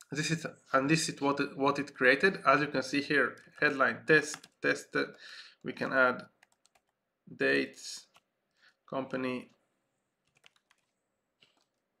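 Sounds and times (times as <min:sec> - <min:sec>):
keyboard keystrokes: 0:10.3 - 0:11.8.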